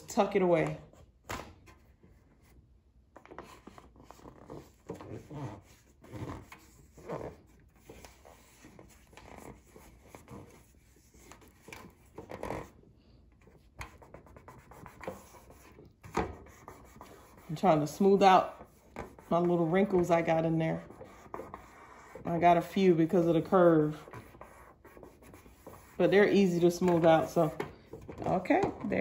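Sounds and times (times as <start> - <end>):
hands rubbing contact paper: 3.2 - 12.8, 13.4 - 29.0.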